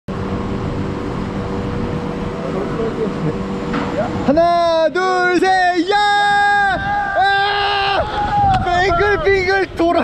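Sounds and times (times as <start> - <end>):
low machinery hum: 0.1 - 10.0.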